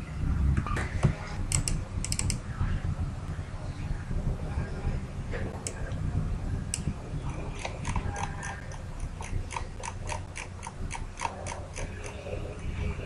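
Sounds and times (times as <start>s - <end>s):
low steady hum: 0.0s - 13.0s
mouse scroll wheel clicking: 1.5s - 2.4s, 6.8s - 12.3s.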